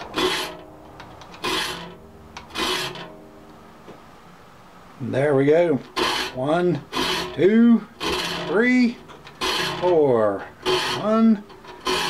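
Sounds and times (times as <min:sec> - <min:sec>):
file rasping on saw teeth: 0:00.2 - 0:00.6, 0:06.0 - 0:07.4, 0:08.0 - 0:08.6, 0:09.4 - 0:10.0, 0:10.6 - 0:12.0.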